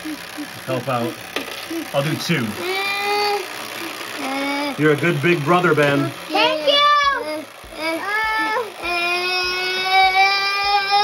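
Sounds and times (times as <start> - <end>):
wind-up timer ticking: 0.0 - 11.0
man speaking: 1.9 - 2.6, 4.8 - 6.2
child holding high uhh sounds: 2.6 - 4.8, 6.3 - 11.0.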